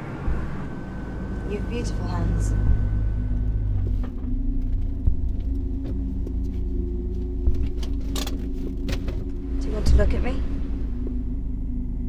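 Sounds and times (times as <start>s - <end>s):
car interior engine drone: 0.0s - 12.0s.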